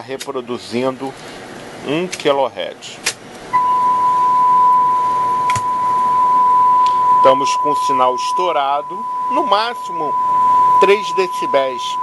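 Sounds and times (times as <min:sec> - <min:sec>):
steady high test tone: 0:03.5 - 0:12.0.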